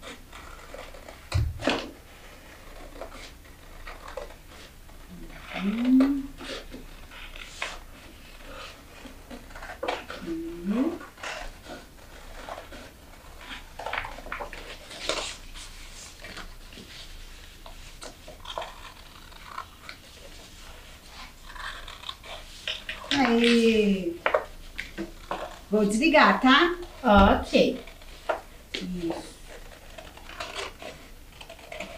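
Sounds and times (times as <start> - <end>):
paper rustling: 0.0 - 26.0, 26.6 - 31.9
person humming: 5.1 - 6.4, 10.2 - 11.0.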